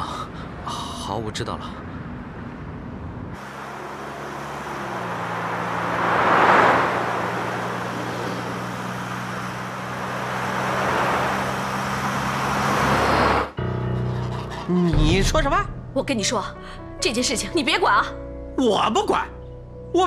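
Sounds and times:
cars driving past: 1.8s - 13.6s.

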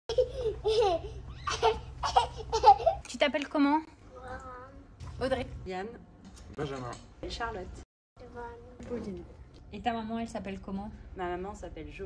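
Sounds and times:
child laughing and babbling: 0.1s - 3.0s.

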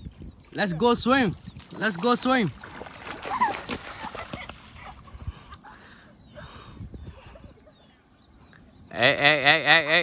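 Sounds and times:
feet splashing through water: 1.4s - 5.3s.

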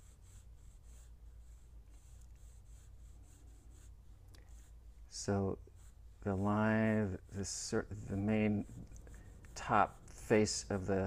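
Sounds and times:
pencil scratching on paper: 0.0s - 11.0s
steady low hum: 0.0s - 11.0s.

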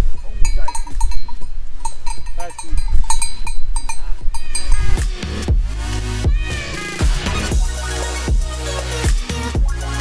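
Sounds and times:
cowbells clanking: 0.0s - 5.0s
music: 4.8s - 10.0s.

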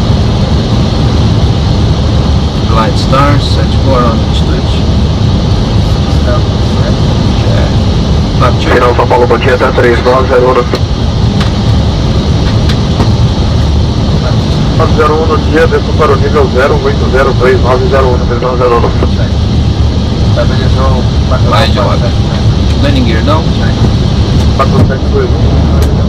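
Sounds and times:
airliner cockpit rumble: 0.0s - 26.0s
voices: 2.6s - 19.5s, 20.1s - 26.0s.

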